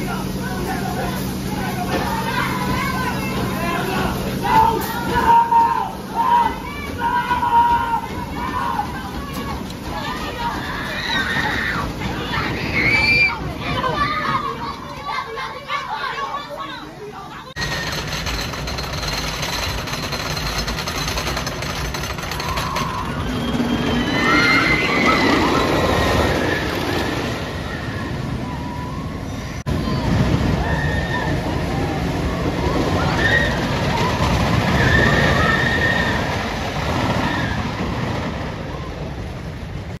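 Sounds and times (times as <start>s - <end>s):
riders screaming: 0.0s - 16.6s, 21.8s - 39.1s
roller coaster rumbling on track: 0.0s - 40.0s.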